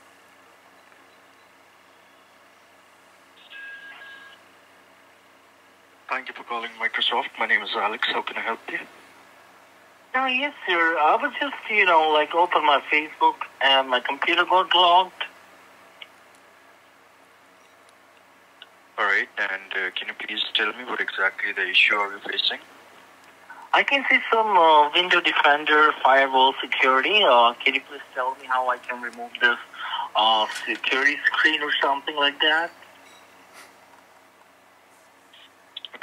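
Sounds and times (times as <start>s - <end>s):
phone line hum: 3.3s - 4.6s
short electronic tone: 3.4s - 4.4s.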